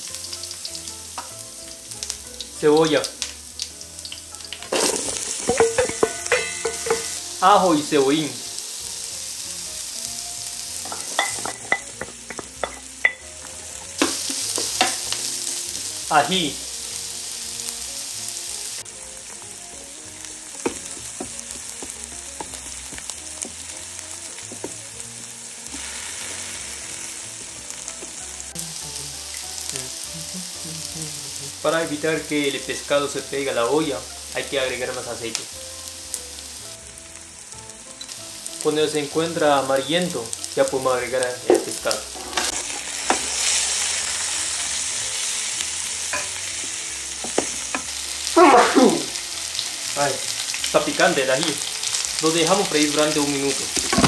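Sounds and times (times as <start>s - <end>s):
onion sizzling in hot oil: 0.0s - 54.0s
metal bowl clinking against pot: 4.6s - 7.2s, 10.8s - 13.3s
wooden spatula scraping pan: 41.5s - 43.7s.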